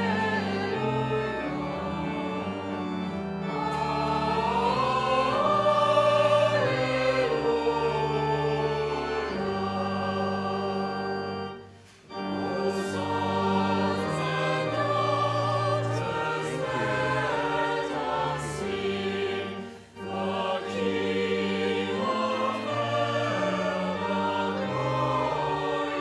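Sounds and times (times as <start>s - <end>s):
church choir singing: 0.0s - 26.0s.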